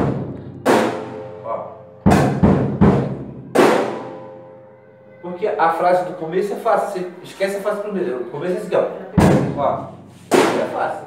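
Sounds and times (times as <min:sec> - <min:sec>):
bass drum strokes: 0:00.0 - 0:04.3
cymbal ringing: 0:00.7 - 0:07.7.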